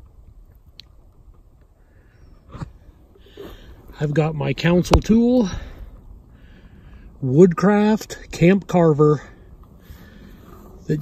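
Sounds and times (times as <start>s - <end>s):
breath drawn in: 2.1s - 3.9s.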